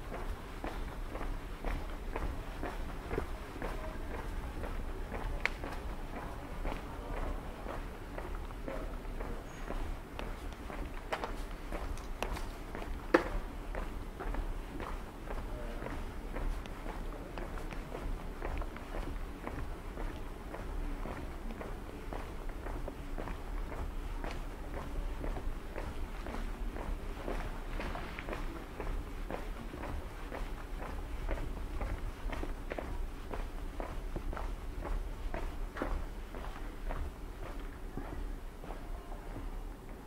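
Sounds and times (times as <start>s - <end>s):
footsteps on stone street: 0.0s - 40.0s.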